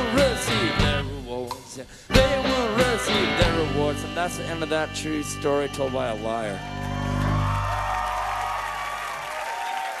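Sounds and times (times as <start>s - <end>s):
audience applauding and cheering: 6.2s - 10.0s.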